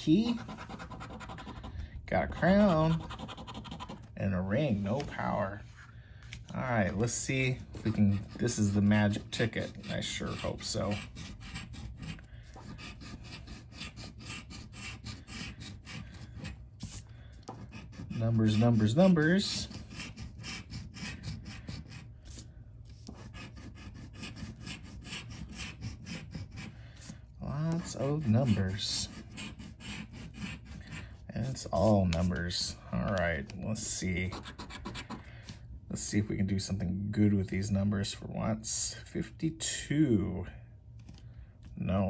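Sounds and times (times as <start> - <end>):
coin scratching paper ticket: 0.3 - 1.6, 2.3 - 4.1, 12.8 - 16.0, 17.7 - 22.0, 23.2 - 26.7, 27.7 - 30.8, 34.3 - 35.2.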